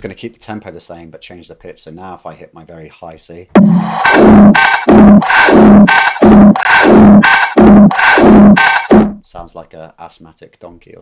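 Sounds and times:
high-pitched drum loop pulsing: 0:03.6 - 0:09.2.

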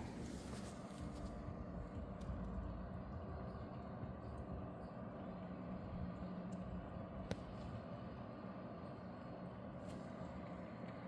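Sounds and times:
breezy wind: 0:00.0 - 0:11.0.

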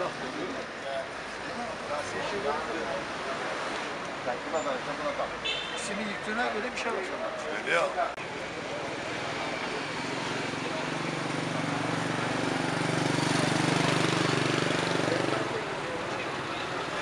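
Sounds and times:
traffic noise: 0:00.0 - 0:17.0
vehicle engine passing: 0:09.0 - 0:16.0.

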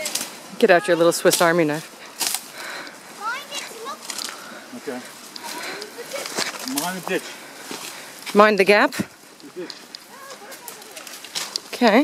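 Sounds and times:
people talking: 0:00.0 - 0:01.9, 0:08.4 - 0:12.0
footsteps on dirt trail: 0:00.0 - 0:12.0
rustling through ferns and grass: 0:00.0 - 0:12.0.

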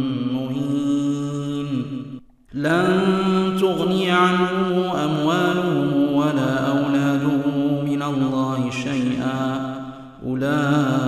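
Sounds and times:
man chanting: 0:00.0 - 0:11.0
breath: 0:09.8 - 0:10.2.

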